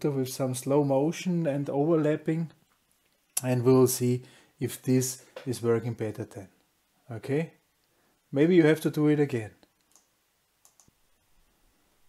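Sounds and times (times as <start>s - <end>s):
faint short clicks: 9.7s - 10.9s.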